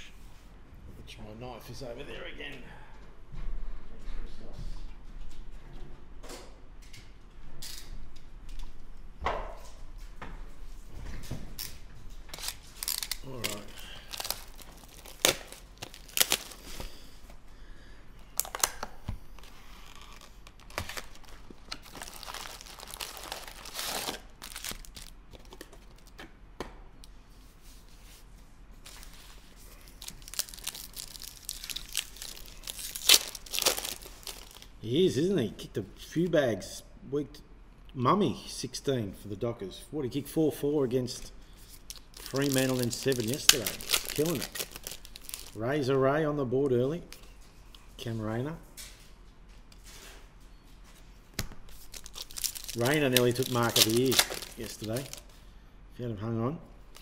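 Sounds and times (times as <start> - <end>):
shrink-wrap crinkling and tearing: 11.6 - 17.1, 18.3 - 26.2, 28.8 - 34.8, 41.7 - 45.8, 51.7 - 55.4.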